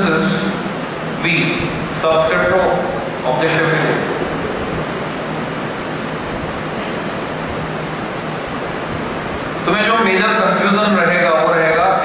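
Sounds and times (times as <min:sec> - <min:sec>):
low hum: 0:00.0 - 0:09.7.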